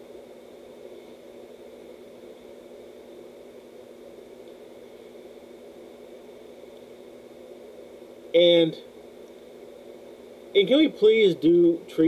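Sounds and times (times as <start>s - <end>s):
low hum with hiss: 0.0s - 12.0s.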